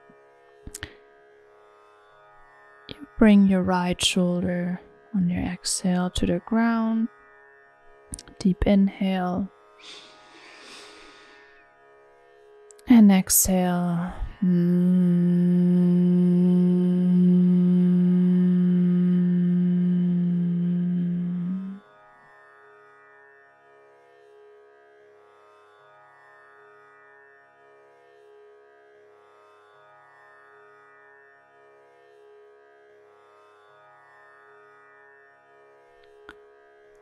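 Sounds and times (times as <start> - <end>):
woman humming a long note: 13.6 - 21.8.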